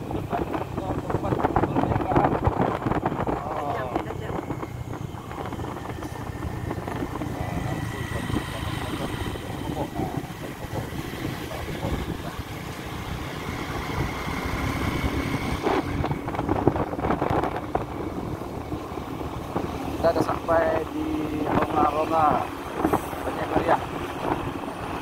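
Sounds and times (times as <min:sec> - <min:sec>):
motorcycle engine running: 0:00.0 - 0:25.0
wind noise on microphone: 0:00.0 - 0:25.0.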